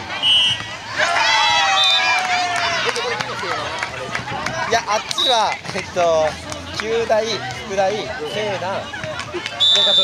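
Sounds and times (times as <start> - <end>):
voices calling: 0.0 - 10.0.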